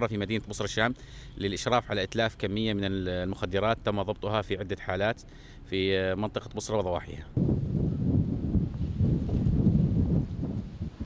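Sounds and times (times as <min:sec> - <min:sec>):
wind buffeting microphone: 0:07.3 - 0:11.0.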